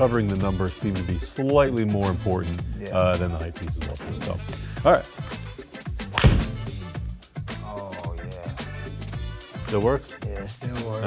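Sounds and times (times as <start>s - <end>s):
background music: 0.0s - 11.0s
golf club striking ball: 6.1s - 6.7s.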